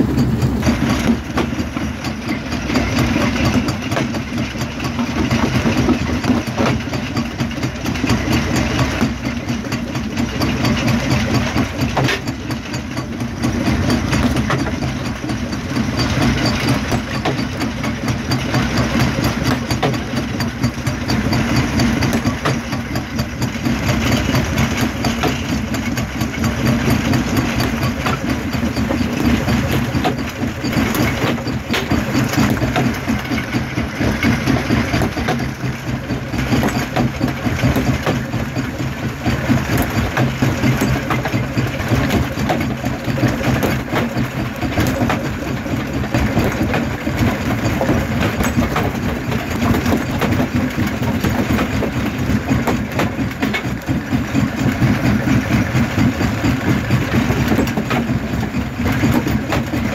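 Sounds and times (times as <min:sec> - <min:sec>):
crushing machinery droning: 0:00.0 - 0:59.9.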